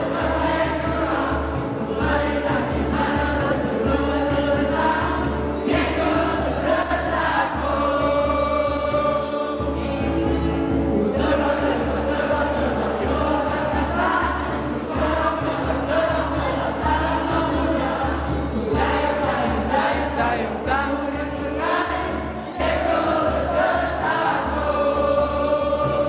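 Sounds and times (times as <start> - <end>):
many voices singing: 0.0 - 26.0.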